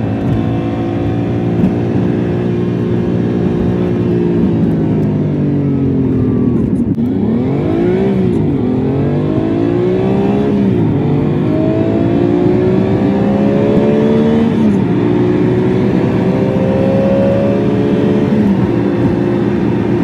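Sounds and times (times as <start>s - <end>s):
car engine revving: 0.0s - 5.0s, 5.6s - 20.0s.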